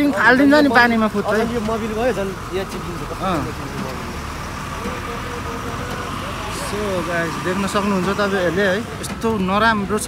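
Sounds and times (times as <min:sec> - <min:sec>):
scattered voices: 0:00.0 - 0:10.0
traffic hum: 0:00.0 - 0:10.0.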